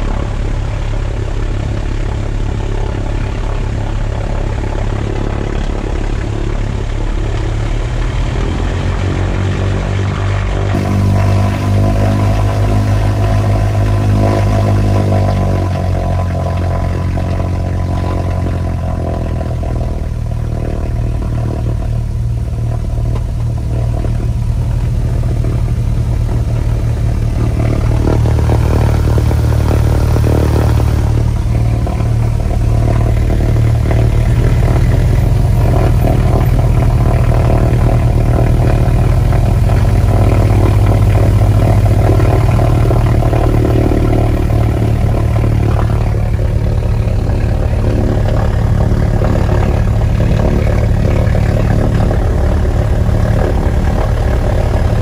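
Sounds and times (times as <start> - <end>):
deep propeller drone: 0.0 - 55.0
piston aircraft engines running: 0.0 - 55.0.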